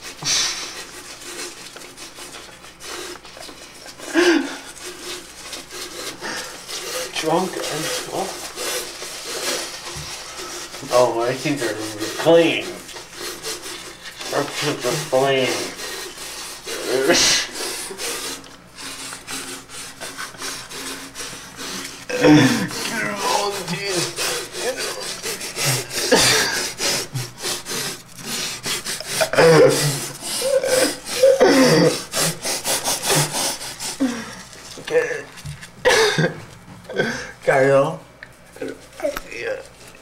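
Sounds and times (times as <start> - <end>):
toothbrushes scrubbing teeth: 0.0 - 36.2, 37.2 - 40.0.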